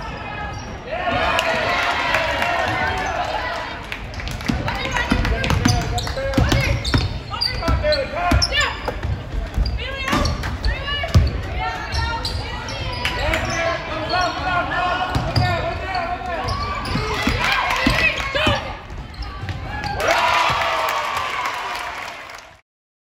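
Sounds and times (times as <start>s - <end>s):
players and spectators shouting: 0.0s - 3.8s, 9.8s - 22.0s.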